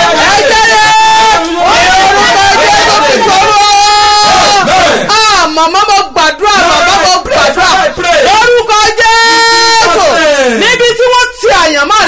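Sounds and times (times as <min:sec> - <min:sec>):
crowd voices: 0:00.0 - 0:05.1
person shouting loudly: 0:00.0 - 0:12.0.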